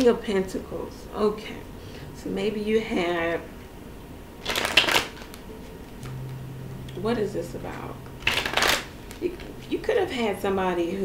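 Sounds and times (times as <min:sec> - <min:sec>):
cards shuffling rustle: 0:04.4 - 0:05.4, 0:08.2 - 0:09.2.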